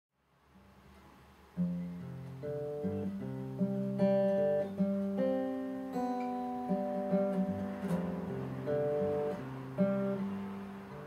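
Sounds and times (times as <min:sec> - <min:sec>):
acoustic guitar picking chords: 0:00.5 - 0:11.0.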